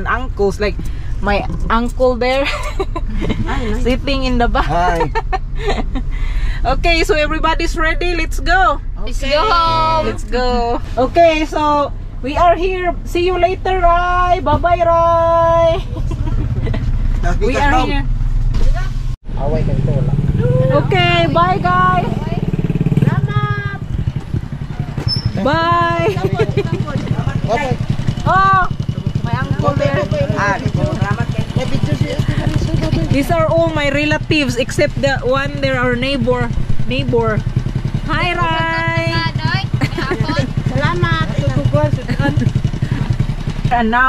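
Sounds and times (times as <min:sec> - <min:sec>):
vehicle engine idling: 0:00.0 - 0:44.0
voices: 0:00.0 - 0:44.0.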